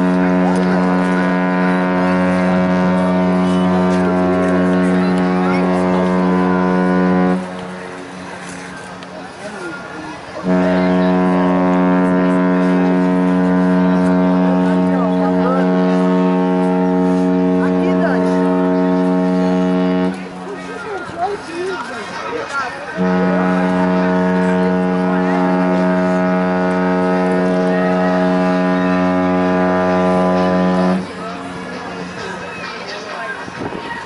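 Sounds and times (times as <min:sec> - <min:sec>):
deep ship horn blasts: 0:00.0 - 0:21.2, 0:22.9 - 0:32.4
spectators chattering: 0:00.0 - 0:34.0.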